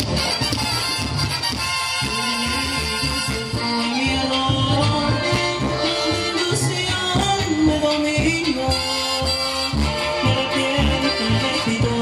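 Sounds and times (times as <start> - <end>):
band with saxophones playing: 0.0 - 12.0.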